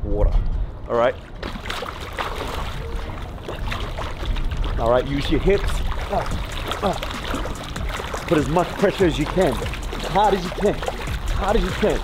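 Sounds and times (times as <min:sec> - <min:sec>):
pool water splashing: 0:01.2 - 0:12.0.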